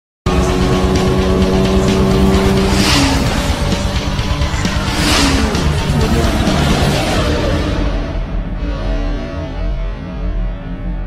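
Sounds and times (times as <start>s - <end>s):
music: 0.3s - 11.0s
sports car engine: 0.3s - 11.0s
car whooshing past: 2.0s - 9.3s.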